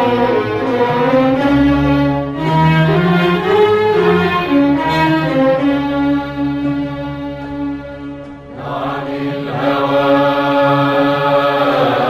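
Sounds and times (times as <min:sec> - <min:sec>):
bowed strings melody: 0:00.0 - 0:12.0.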